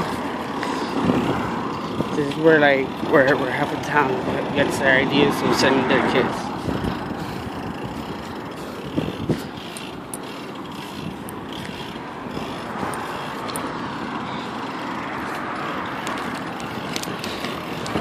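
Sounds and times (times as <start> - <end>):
bicycle road and wind noise: 0.0 - 18.0
bike clicks and rattles: 0.0 - 18.0.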